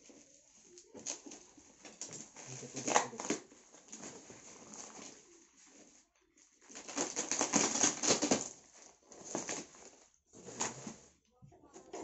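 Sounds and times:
plastic sacking and tape tearing: 0.6 - 6.0, 6.6 - 11.2.

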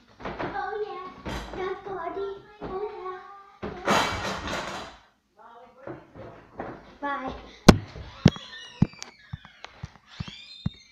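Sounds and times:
faint squeaky falling tones: 8.1 - 10.9.

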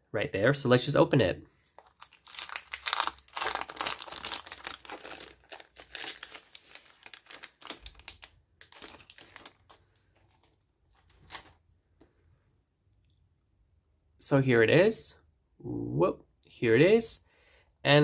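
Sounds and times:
plastic sleeve crinkling: 1.6 - 11.6.

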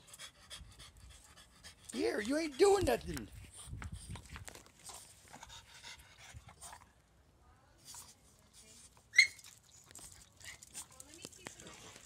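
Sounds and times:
dogs panting: 0.0 - 7.0
dogs scuffling on concrete: 7.9 - 12.0
dog yelping: 9.2 - 9.4.

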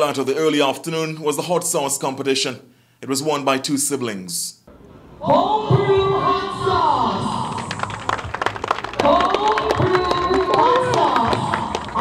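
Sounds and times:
people clapping: 7.4 - 12.0.

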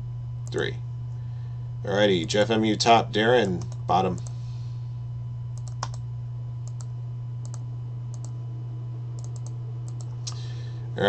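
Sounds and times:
low electrical hum: 0.0 - 11.0
computer mouse and keyboard clicks: 5.6 - 6.0.

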